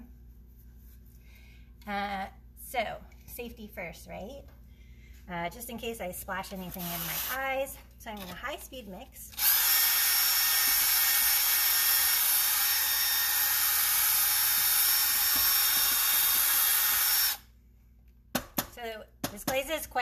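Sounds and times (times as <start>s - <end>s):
drill mixer whirring: 9.3s - 17.4s.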